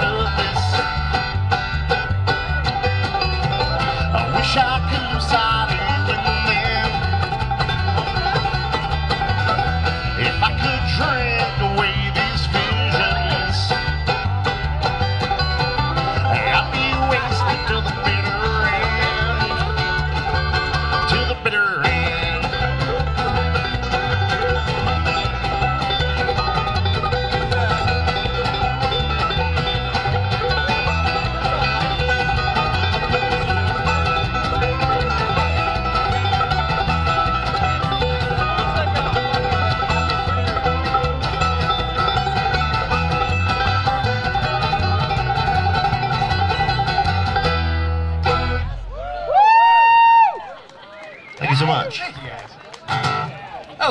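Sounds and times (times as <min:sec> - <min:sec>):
upright bass: 0:00.0 - 0:49.8, 0:51.4 - 0:53.9
acoustic guitar: 0:00.0 - 0:50.0, 0:52.8 - 0:53.9
banjo: 0:00.0 - 0:50.6, 0:51.4 - 0:53.9
bluegrass string band playing: 0:00.0 - 0:53.9.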